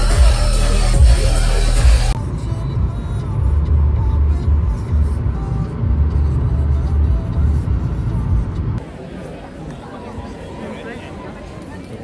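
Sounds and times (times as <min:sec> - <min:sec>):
car road and engine rumble: 0:00.0 - 0:10.2
music playing: 0:00.0 - 0:11.4.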